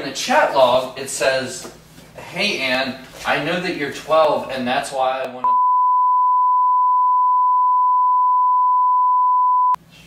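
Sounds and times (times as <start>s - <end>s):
censor bleep: 5.4s - 9.8s.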